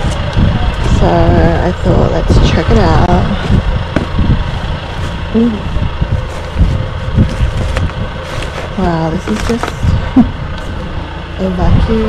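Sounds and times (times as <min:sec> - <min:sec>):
low rumble: 0:00.0 - 0:12.0
hands rummaging through rubbish: 0:06.1 - 0:10.0.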